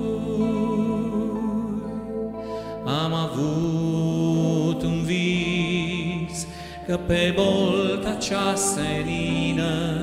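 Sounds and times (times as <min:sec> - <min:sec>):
digital piano: 0:00.0 - 0:10.0
man and woman singing duet: 0:00.0 - 0:10.0.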